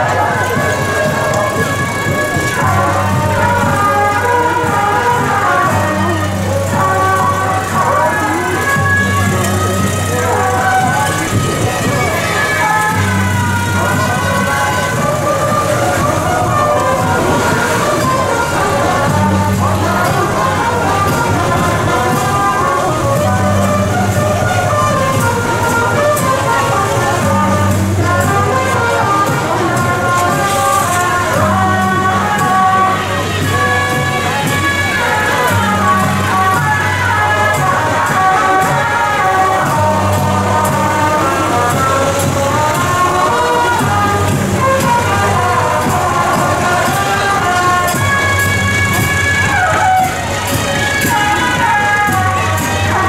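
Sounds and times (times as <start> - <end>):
procession music sliding melody: 0.0 - 53.0.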